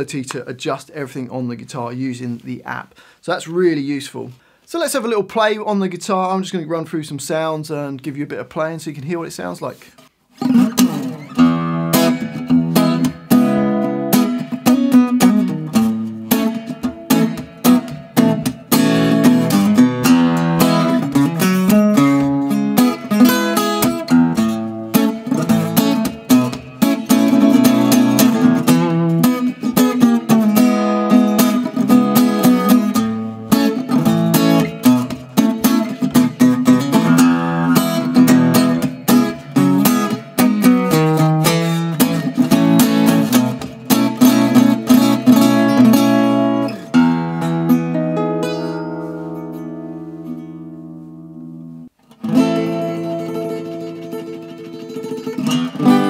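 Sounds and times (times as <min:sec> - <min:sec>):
acoustic guitar picked notes: 0:09.7 - 0:56.0.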